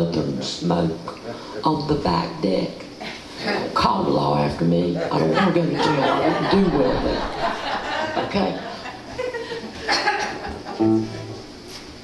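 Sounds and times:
electric guitar chord ringing: 10.8s - 11.6s.

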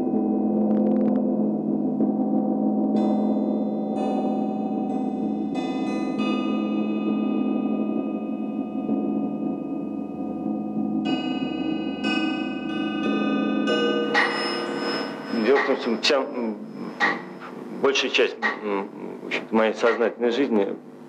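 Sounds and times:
gong-like metallic tones: 0.0s - 19.1s.

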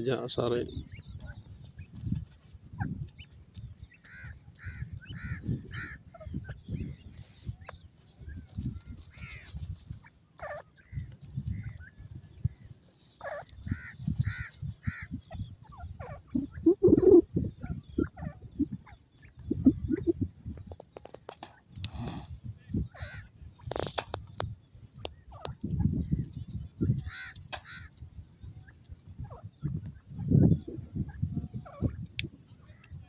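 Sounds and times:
francolins calling: 0.0s - 20.9s, 22.7s - 33.0s.

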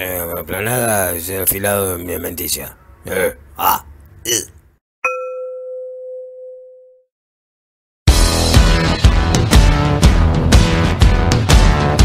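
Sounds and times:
low bell-like ding: 5.0s - 7.0s.

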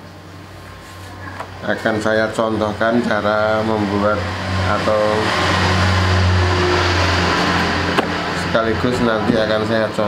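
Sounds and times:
speech: 1.6s - 5.3s, 8.5s - 10.0s.

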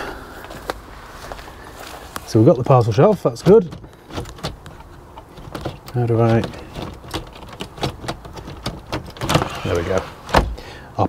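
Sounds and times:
plastic load cover clicks and knocks: 3.4s - 9.6s.

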